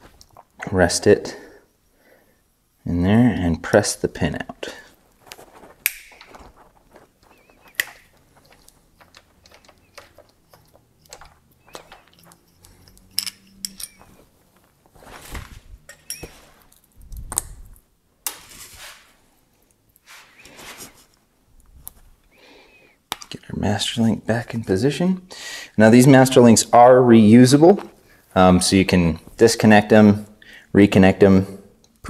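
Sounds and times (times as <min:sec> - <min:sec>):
chain tool clicking: 0:07.8 - 0:14.1
chain links knocking together: 0:07.9 - 0:14.2.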